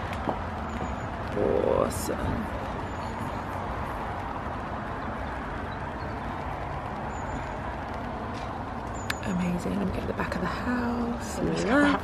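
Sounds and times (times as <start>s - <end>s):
outdoor low rumble with hiss: 0.0s - 12.0s.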